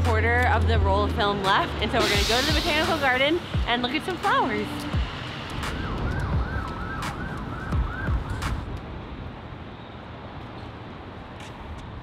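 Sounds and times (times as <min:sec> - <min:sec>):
street traffic rumble: 0:00.0 - 0:12.0
siren on fast yelp: 0:05.6 - 0:08.4.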